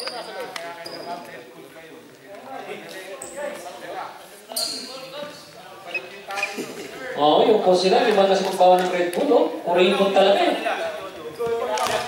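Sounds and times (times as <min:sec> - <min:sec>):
chatter of people: 0:00.0 - 0:12.0.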